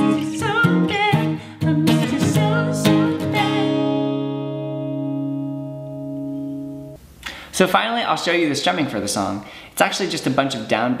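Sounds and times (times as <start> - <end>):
person singing: 0.0 - 4.4
acoustic guitar strumming chords: 0.0 - 7.0.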